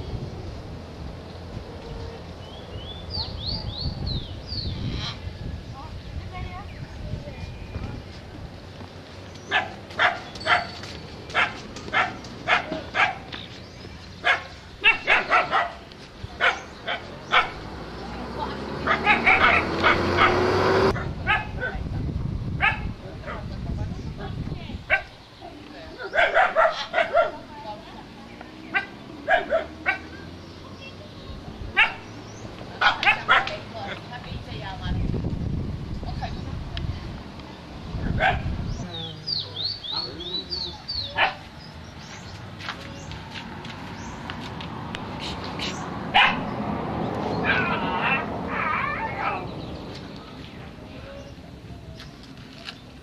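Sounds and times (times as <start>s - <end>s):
dog barking: 9.5s - 13.3s, 14.2s - 15.8s, 16.4s - 17.6s, 18.8s - 20.4s, 21.0s - 21.8s, 22.6s - 23.4s, 24.9s - 25.1s, 26.0s - 27.5s, 28.7s - 30.2s, 31.8s - 32.1s, 32.8s - 34.0s, 38.2s - 38.5s, 41.1s - 41.5s, 46.1s - 46.5s, 47.4s - 49.5s.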